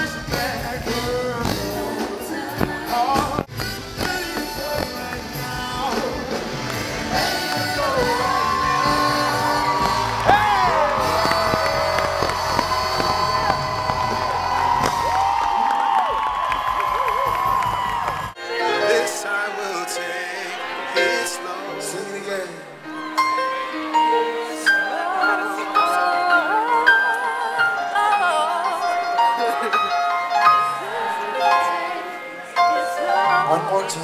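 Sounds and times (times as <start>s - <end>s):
amplified singer: 0.0s - 15.0s, 18.4s - 34.0s
live concert music: 0.0s - 34.0s
crowd whooping and cheering: 7.1s - 18.4s.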